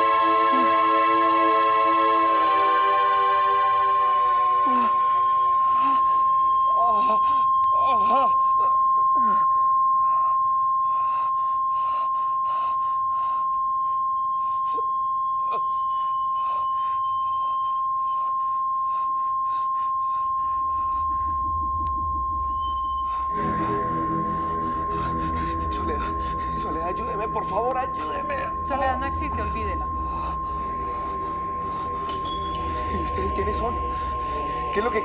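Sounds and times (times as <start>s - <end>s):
regular pulsing: 0.0s - 35.0s
high-pitched electronic tone: 3.8s - 35.0s
deep rumble: 20.8s - 35.0s.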